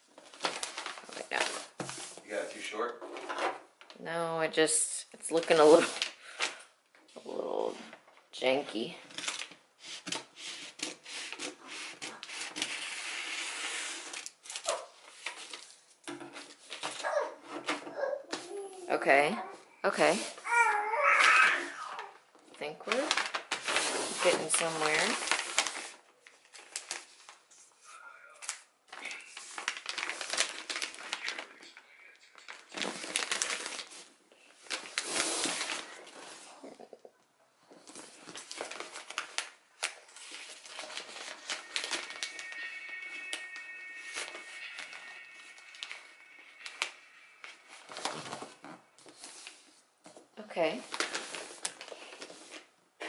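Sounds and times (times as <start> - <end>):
wrapping paper crinkling: 0.0 - 2.8, 5.3 - 6.7, 9.1 - 17.3, 22.8 - 36.5, 37.8 - 52.7.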